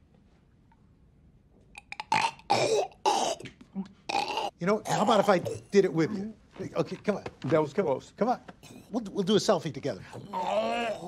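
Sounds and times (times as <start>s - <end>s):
man hacking and gagging: 2.0s - 5.8s.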